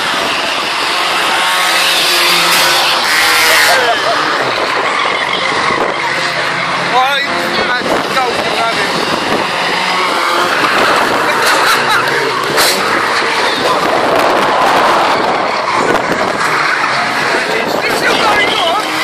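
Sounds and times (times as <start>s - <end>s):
racing car engines revving: 0.0s - 19.0s
tyres skidding: 0.0s - 19.0s.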